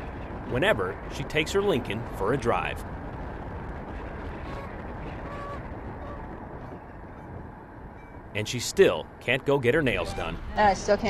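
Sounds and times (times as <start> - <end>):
wind and road rush: 0.0 - 11.0
goose honks: 4.4 - 6.3.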